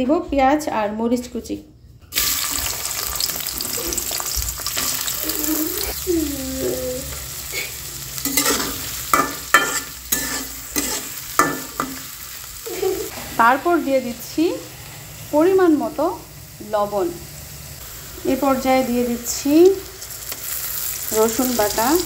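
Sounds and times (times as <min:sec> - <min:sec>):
onions sizzling in hot oil: 0:02.1 - 0:22.0
spatula scraping a pan: 0:07.5 - 0:12.1.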